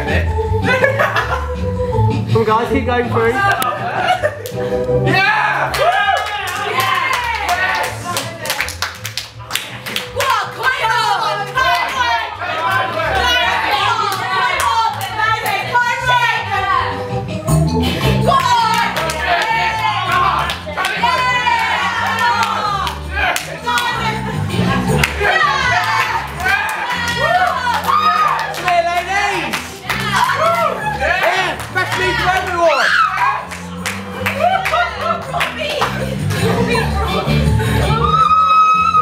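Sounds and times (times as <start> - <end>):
music with low bass: 0.0 - 8.1, 9.3 - 39.0
people clapping: 4.4 - 4.6, 5.6 - 16.4, 18.0 - 37.0
group shouting and whooping: 5.0 - 8.1, 10.2 - 16.9, 18.2 - 35.7, 36.5 - 39.0.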